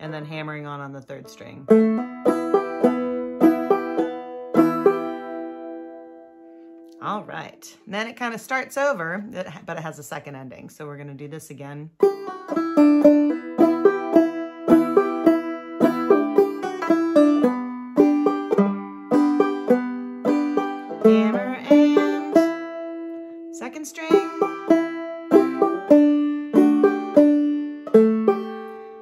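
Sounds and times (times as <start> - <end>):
banjo picking slow melody: 0.0 - 7.2, 12.0 - 29.0.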